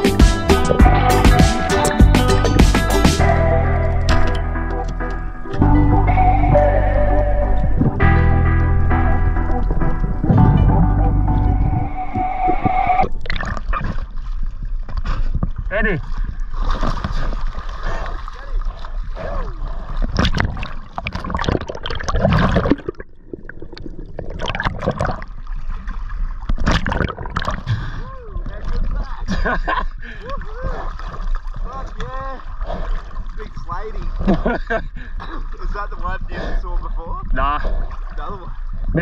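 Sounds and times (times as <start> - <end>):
muffled underwater water gurgling: 3.4 - 14.0, 17.8 - 29.3.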